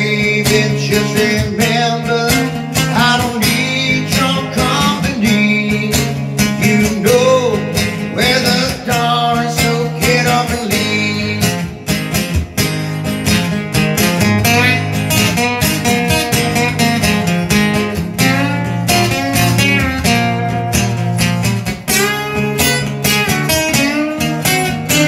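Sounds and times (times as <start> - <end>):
man singing: 0.0 - 11.9
acoustic guitar strumming: 0.0 - 25.0.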